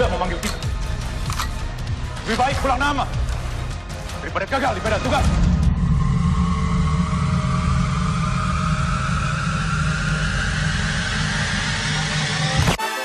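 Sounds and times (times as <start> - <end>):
low rumbling drone: 0.0 - 12.8
rising high tone: 5.5 - 12.8.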